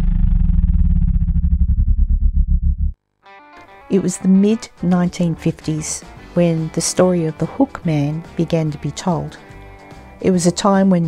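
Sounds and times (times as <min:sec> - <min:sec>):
distorted synthesizer drone: 0:00.0 - 0:03.0
pulsing low rumble: 0:00.0 - 0:03.0.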